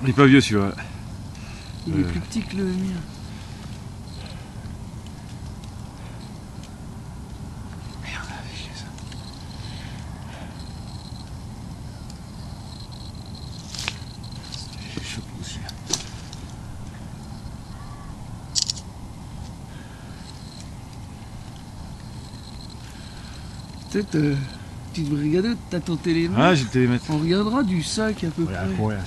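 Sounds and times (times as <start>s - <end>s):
low outdoor rumble: 0.0s - 29.0s
sharp clicks: 18.5s - 18.9s.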